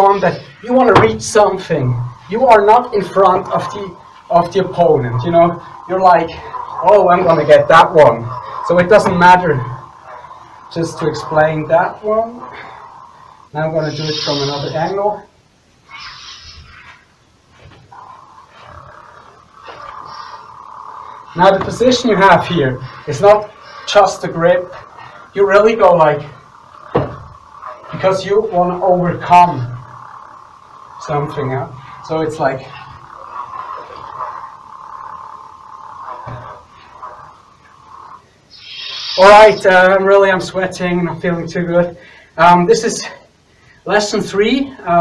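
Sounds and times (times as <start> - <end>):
lightsaber humming: 0.0 - 41.5
toy lightsaber electronic hum: 12.4 - 15.0, 38.5 - 39.6.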